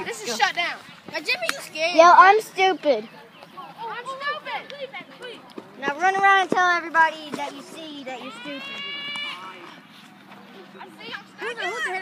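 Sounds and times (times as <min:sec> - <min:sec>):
faint background noise: 0:00.0 - 0:12.0
child's high-pitched cry: 0:08.2 - 0:09.5.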